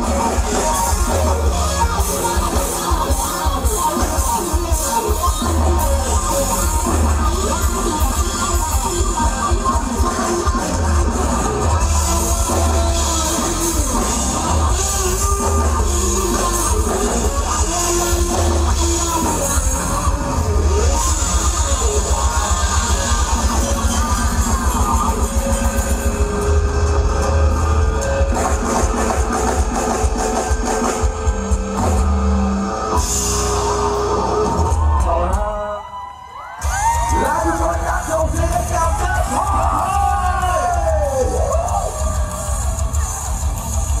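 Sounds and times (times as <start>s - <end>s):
crowd cheering and screaming: 0.0s - 44.0s
rock band playing: 0.0s - 44.0s.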